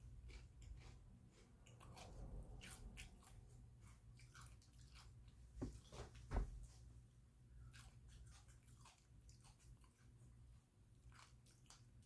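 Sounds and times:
person chewing chips: 0:00.0 - 0:05.3, 0:10.9 - 0:12.0.

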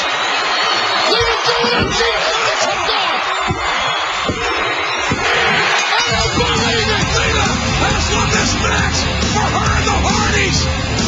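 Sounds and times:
arena crowd noise: 0:00.0 - 0:11.0
loud rock music: 0:05.8 - 0:11.0.

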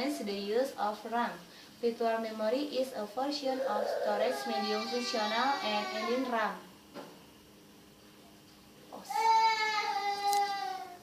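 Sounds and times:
long high drawn-out cry: 0:09.1 - 0:11.0.

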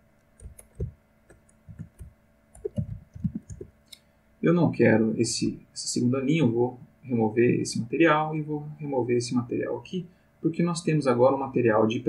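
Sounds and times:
keyboard typing: 0:00.2 - 0:03.7.

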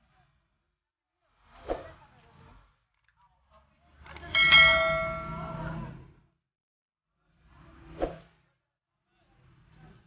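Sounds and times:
bright bell ding: 0:04.4 - 0:05.8.

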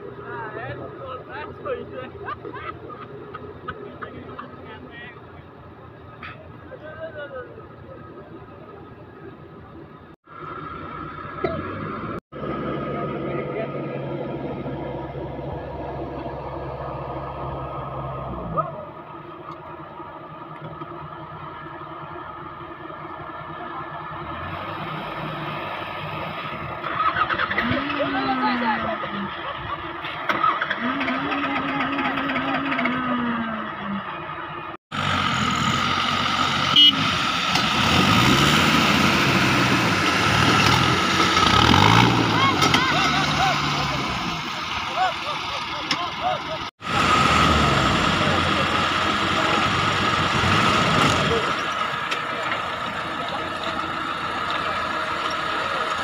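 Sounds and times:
off-road vehicle engine revving: 0:10.2 - 0:56.0.

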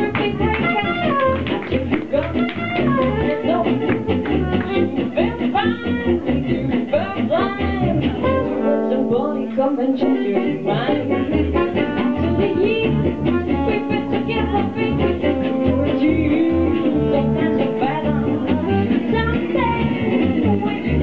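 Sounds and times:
plucked double bass: 0:00.0 - 0:21.0
soprano saxophone: 0:00.0 - 0:21.0
woman singing: 0:00.0 - 0:21.0.

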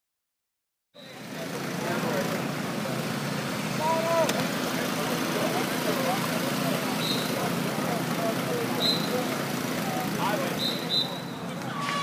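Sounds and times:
open-air rumble: 0:01.0 - 0:12.0
distant shouts of players: 0:10.3 - 0:12.0.

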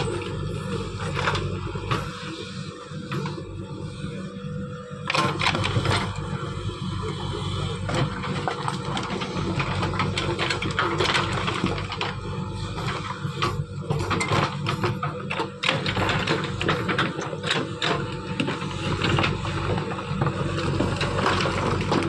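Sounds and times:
diesel engine under load: 0:00.0 - 0:22.0.

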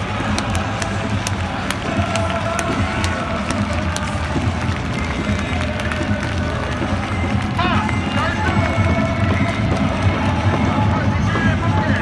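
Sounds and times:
crowd singing a chant: 0:00.0 - 0:12.0
sharp rhythmic beats: 0:00.0 - 0:12.0.

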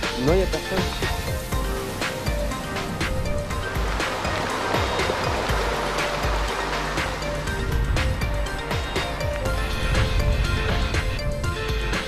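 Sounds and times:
waves washing on rocky shore: 0:00.0 - 0:11.1
music with steady beat: 0:00.0 - 0:12.0.

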